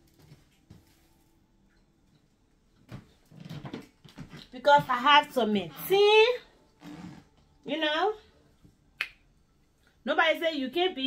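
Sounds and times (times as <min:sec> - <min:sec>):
finger snap: 0:09.0 - 0:09.3.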